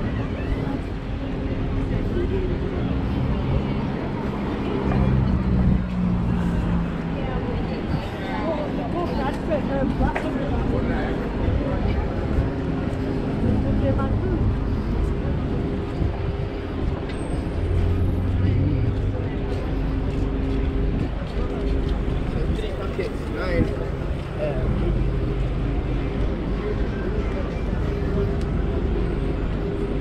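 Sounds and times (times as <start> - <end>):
passers-by talking: 0.0 - 30.0
road traffic rumble: 0.0 - 30.0
vehicle engine running nearby: 0.0 - 30.0.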